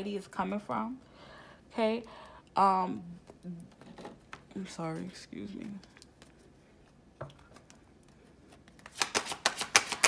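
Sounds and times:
cards shuffled by hand: 8.4 - 10.0.

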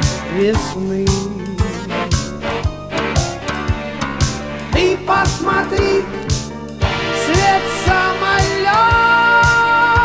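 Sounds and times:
synthesizer chords: 1.6 - 8.7
drum machine beat: 3.2 - 9.6.

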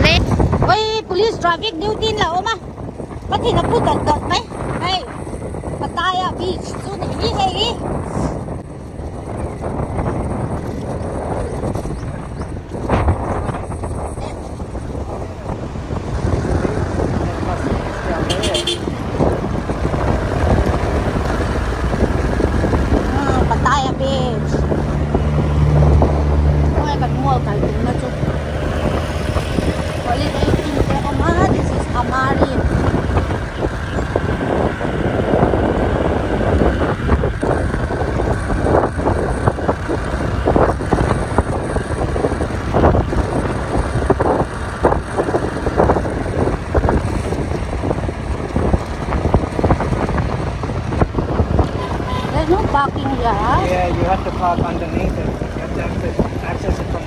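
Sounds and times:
traffic: 0.0 - 57.0
vehicle engine running: 0.0 - 57.0
wind rushing over microphone: 0.0 - 57.0.

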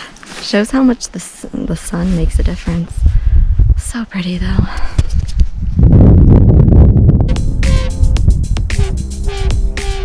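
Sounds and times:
wind rumble on microphone: 0.6 - 10.0.

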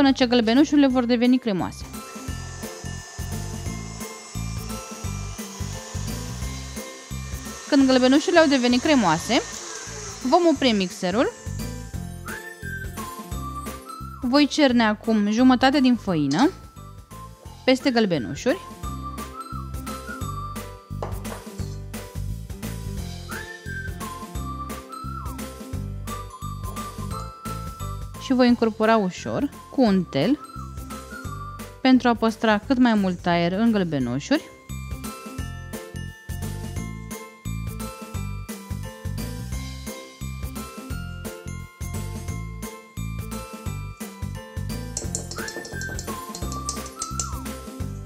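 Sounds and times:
repeating bass line: 1.6 - 12.2
stand mixer whisking: 1.8 - 12.0, 45.0 - 47.3
music with rhythmic bass line: 34.9 - 48.0
light tapping beat: 45.0 - 47.5.

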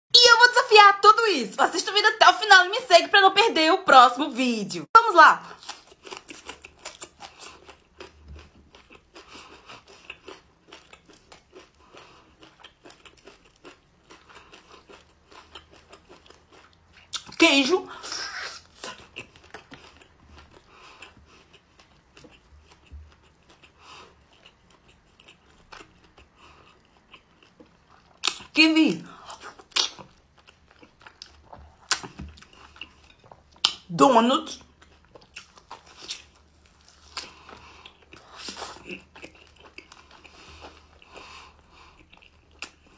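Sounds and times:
mouth chewing wetly: 5.6 - 33.9, 34.6 - 42.9.

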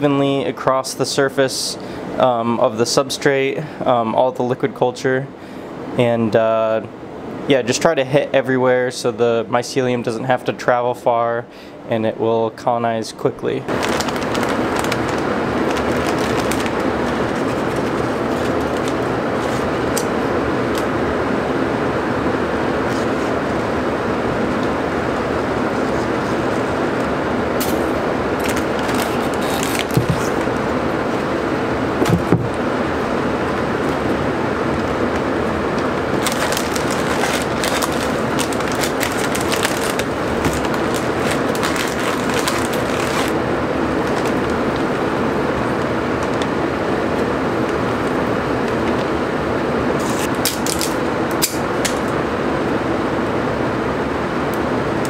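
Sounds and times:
rushing fan noise: 0.0 - 55.0
plastic bag crinkling: 13.7 - 20.0, 27.7 - 30.6, 36.1 - 45.0.

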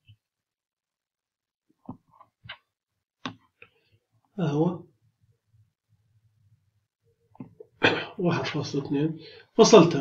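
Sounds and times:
man speaking: 8.1 - 10.0.

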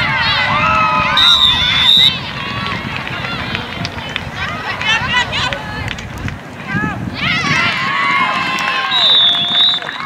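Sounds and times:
voices calling and shouting: 0.0 - 10.0.

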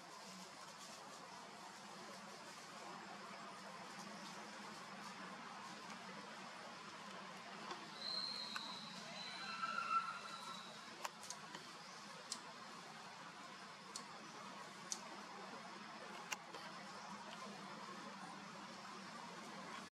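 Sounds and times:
lower pitched call: 7.9 - 10.8
thin high call: 7.9 - 11.0.

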